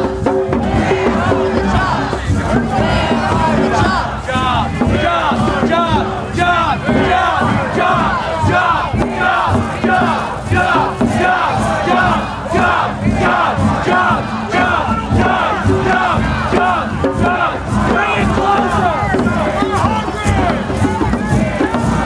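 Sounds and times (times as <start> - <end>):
crowd of protesters shouting: 0.0 - 22.0.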